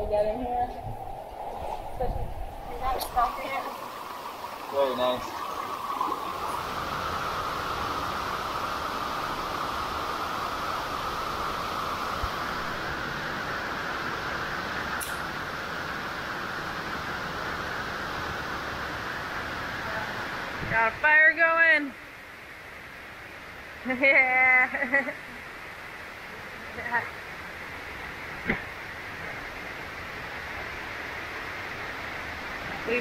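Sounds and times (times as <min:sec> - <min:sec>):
river rushing: 0:00.0 - 0:21.3.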